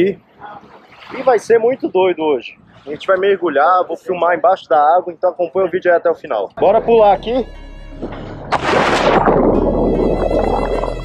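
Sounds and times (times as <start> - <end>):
music with bowed strings: 6.6 - 8.7
water churning and bubbles: 8.0 - 11.0.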